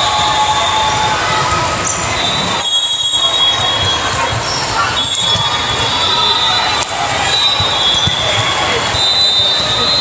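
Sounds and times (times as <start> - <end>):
sneakers squealing on hardwood: 1.8 - 10.0.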